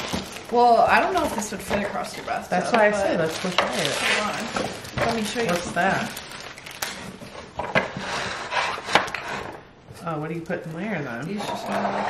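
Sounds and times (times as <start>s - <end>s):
wooden tray scraping cardboard box: 1.0s - 5.9s, 11.4s - 12.0s.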